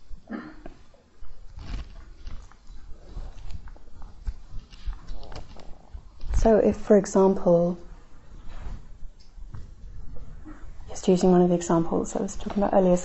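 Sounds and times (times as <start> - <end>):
low rumbling and rustling: 0.0 - 13.0.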